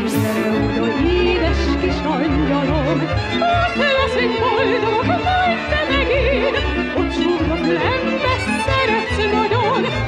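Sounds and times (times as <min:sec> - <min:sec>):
soprano singing with vibrato: 0:00.0 - 0:10.0.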